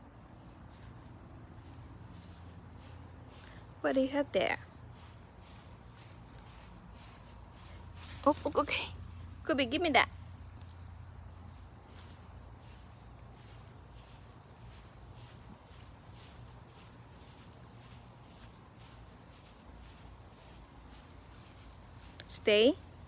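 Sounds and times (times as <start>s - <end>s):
high insect chirp: 0.0s - 23.0s
footsteps on grass: 0.2s - 23.0s.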